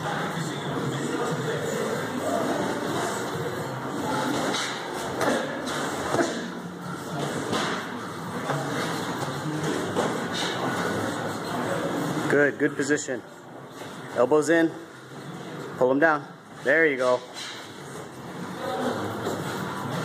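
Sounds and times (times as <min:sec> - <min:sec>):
boxing gym din: 0:00.0 - 0:20.0.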